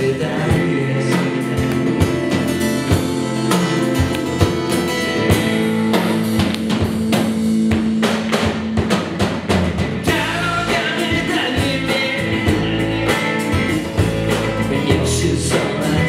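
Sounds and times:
drum and cymbal hits: 0.0 - 16.0
sustained guitar and bass notes: 0.0 - 16.0.

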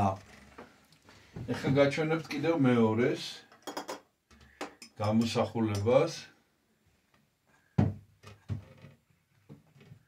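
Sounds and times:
clinks and knocks on shelf: 3.5 - 5.9.

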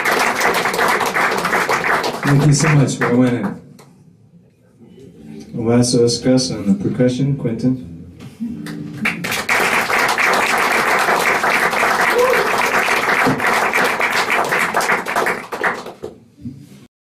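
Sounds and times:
audience applauding: 0.0 - 3.4, 8.7 - 16.2.

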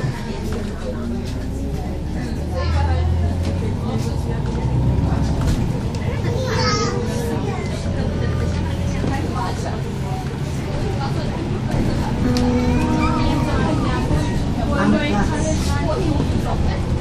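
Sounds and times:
bus engine drone: 0.0 - 17.0
passengers talking: 0.0 - 17.0.

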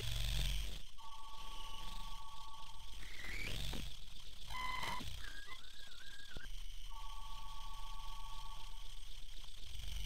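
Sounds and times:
low pulsing hum: 0.0 - 10.0
steady beeping tone: 4.4 - 9.2
wavering whistle-like tone: 4.5 - 8.8.

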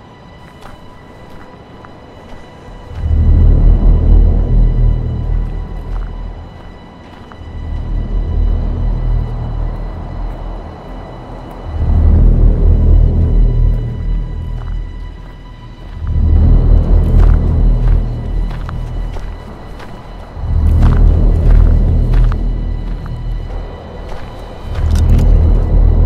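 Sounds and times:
dark ominous trailer music: 0.0 - 26.0
deep bass swells: 2.9 - 6.6, 7.4 - 26.0.

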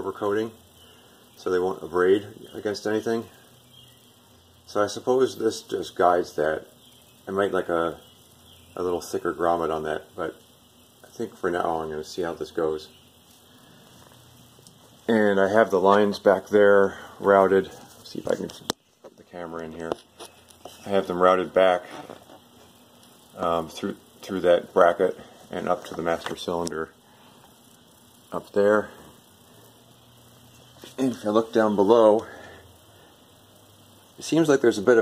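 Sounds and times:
small tick: 13.9 - 14.8.

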